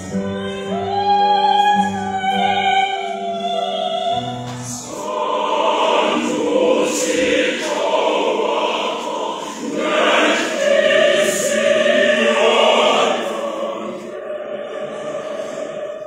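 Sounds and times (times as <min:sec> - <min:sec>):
mixed choir singing: 0:00.0 - 0:16.0.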